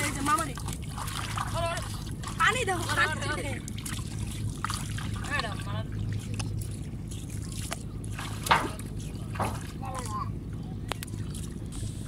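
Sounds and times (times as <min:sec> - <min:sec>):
feet splashing in shallow water: 0:00.0 - 0:12.0.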